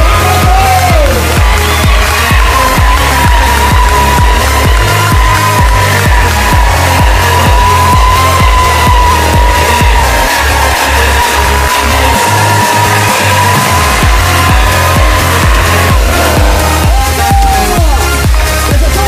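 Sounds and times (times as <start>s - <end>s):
dance music with steady beat: 0.0s - 19.0s.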